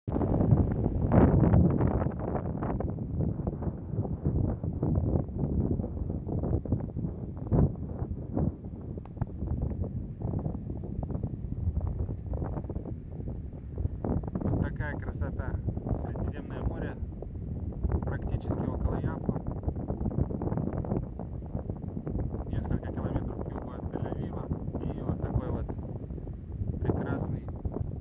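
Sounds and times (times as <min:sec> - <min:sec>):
wind buffeting microphone: 0:00.1 - 0:28.0.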